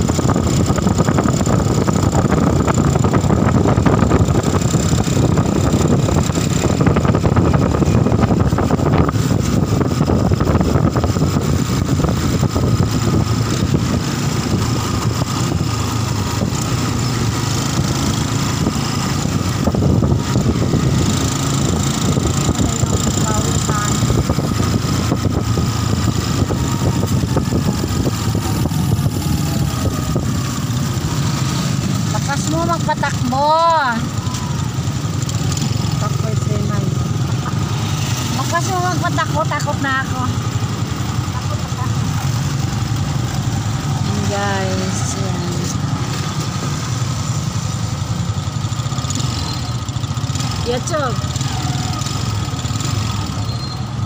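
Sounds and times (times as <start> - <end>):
vehicle engine and road noise: 0.0 - 54.0.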